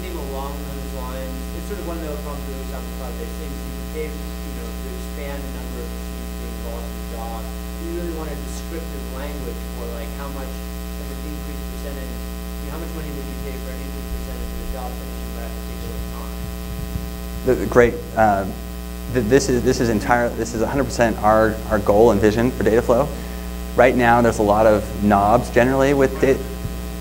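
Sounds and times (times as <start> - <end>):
distant voice talking: 0.0 - 23.2
electrical mains hum: 0.0 - 27.0.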